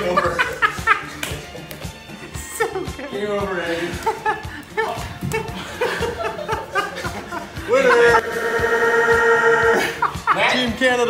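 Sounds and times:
man yelling high-pitched: 7.7 - 9.9.

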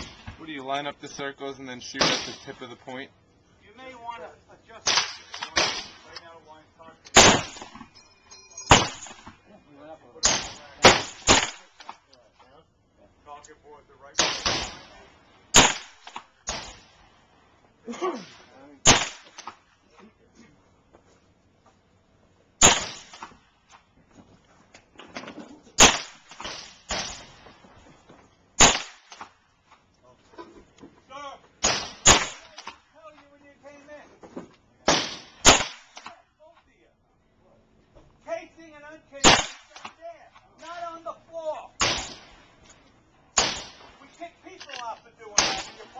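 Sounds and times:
gunshots: 2.0 - 2.7, 4.8 - 6.1, 7.1 - 7.9, 8.7 - 9.4, 10.2 - 12.0, 14.2 - 17.0, 18.1 - 19.6, 22.6 - 23.4, 25.8 - 27.4, 28.6 - 29.3, 31.6 - 32.8, 34.9 - 36.2, 39.2 - 39.9, 41.8 - 42.4, 43.4 - 44.1, 45.3 - 45.9.

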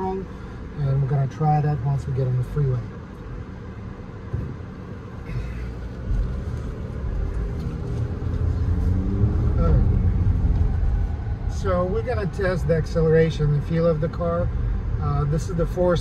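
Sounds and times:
road rumble: 0.0 - 16.0
car engine accelerating: 5.3 - 15.0.

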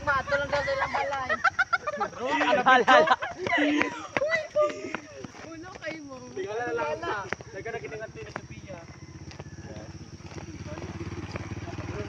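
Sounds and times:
small motorcycle riding by: 0.0 - 2.2, 6.8 - 12.0.

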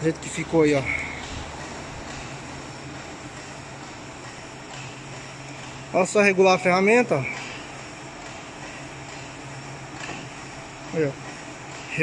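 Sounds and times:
workshop hum and hiss: 0.0 - 12.0.

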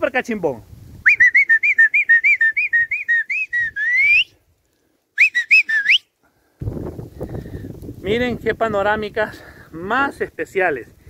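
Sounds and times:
person whistling: 1.1 - 4.4, 5.2 - 6.1.

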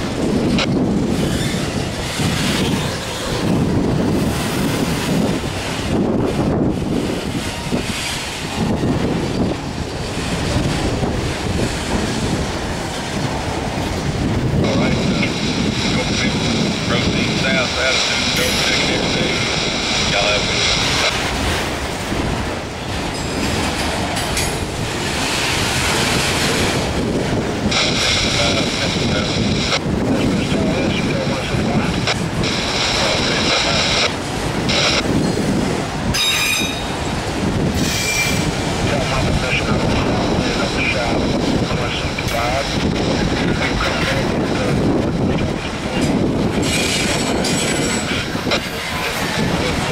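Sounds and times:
train wheels rumbling on rails: 0.0 - 49.9
high-pitched wheel squeal: 36.2 - 36.9, 37.8 - 38.4.

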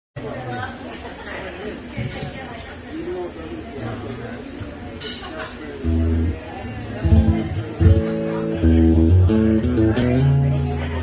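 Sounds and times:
indistinct chatter of voices: 0.2 - 11.0.

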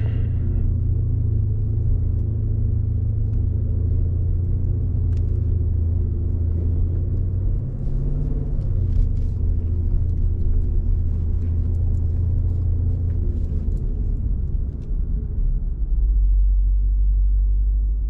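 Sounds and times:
car engine low rumble: 0.0 - 18.0.

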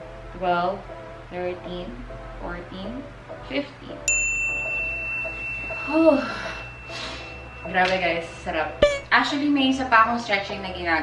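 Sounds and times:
electronic bell ding: 4.1 - 9.0.

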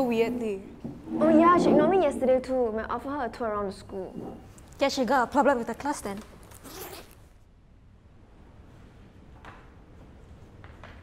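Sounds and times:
zipper pulled on bag: 6.5 - 7.2.

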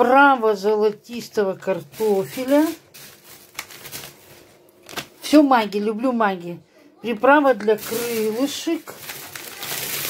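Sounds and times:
plastic packaging crinkling: 1.1 - 5.3, 7.5 - 10.0.

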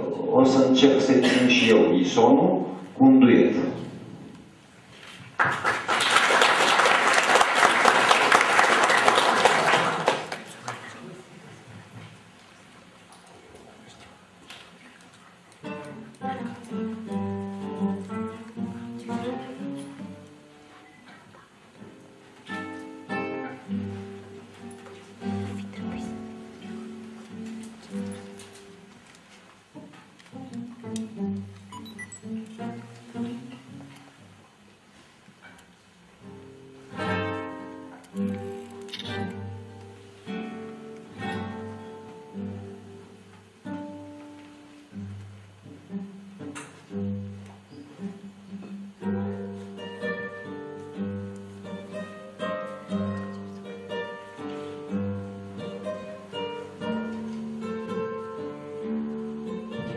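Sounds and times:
classical guitar playing: 15.3 - 59.9.

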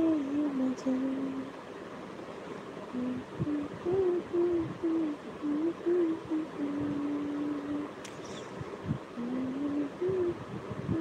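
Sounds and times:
woman humming: 3.0 - 8.6, 9.2 - 11.0.

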